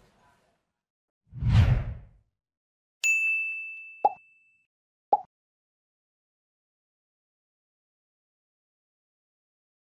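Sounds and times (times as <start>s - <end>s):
deep whoosh with low boom: 1.4s - 2.1s
bright bell-like ding: 3.0s - 4.6s.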